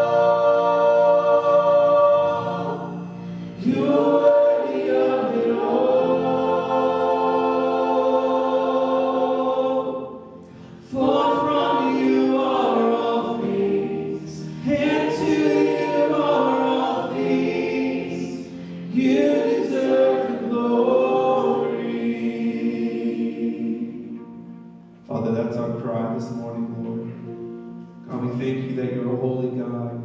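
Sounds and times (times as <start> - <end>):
group singing worship song: 0.0 - 24.7
soft band accompaniment: 10.3 - 30.0.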